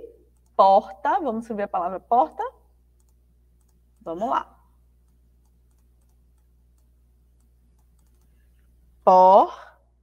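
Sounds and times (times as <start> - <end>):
low steady hum: 0.0 - 10.0
keyboard and mouse clicks: 3.0 - 4.1, 5.0 - 8.4.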